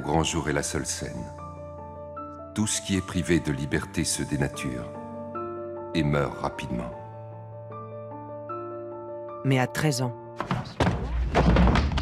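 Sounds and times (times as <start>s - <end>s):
music: 0.0s - 12.0s
heavy thud: 10.4s - 12.0s.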